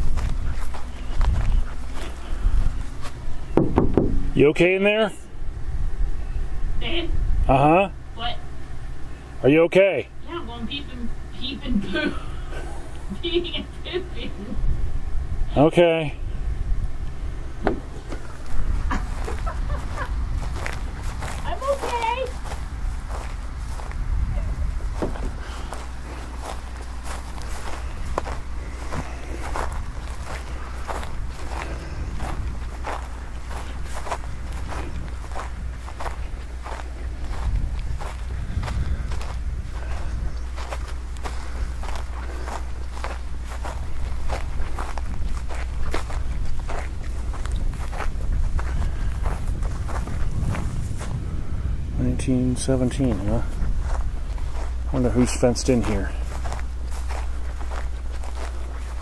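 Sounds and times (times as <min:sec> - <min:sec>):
footsteps on dry grass: 0:00.0 - 0:04.4, 0:16.2 - 0:59.0
wind rumble on microphone: 0:00.0 - 0:04.5, 0:05.2 - 0:09.2, 0:10.9 - 0:59.0.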